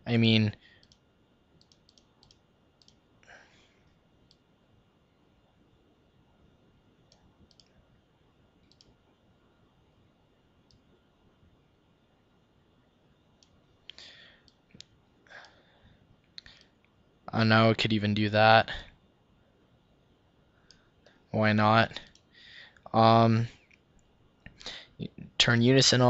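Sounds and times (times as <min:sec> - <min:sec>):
faint computer mouse clicks: 0:00.8 - 0:01.0, 0:01.6 - 0:03.0, 0:07.1 - 0:07.7, 0:08.6 - 0:09.0.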